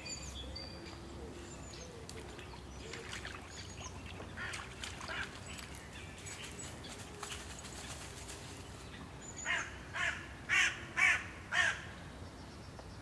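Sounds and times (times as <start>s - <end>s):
crow cawing: 9.5s - 11.8s.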